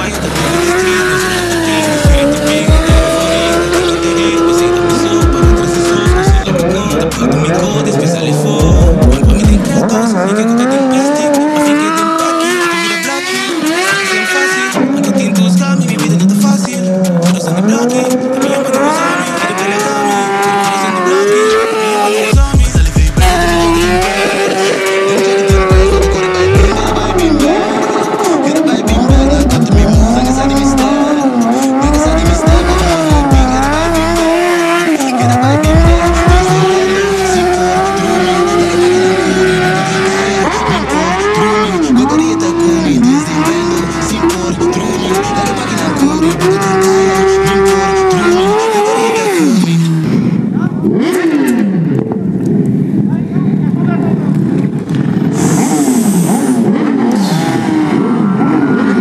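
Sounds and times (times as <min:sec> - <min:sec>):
motorcycle engine revving: 0:00.0 - 0:59.0
tyre squealing: 0:23.2 - 0:50.1, 0:54.4 - 0:59.0
hissing noise: 0:55.3 - 0:57.5.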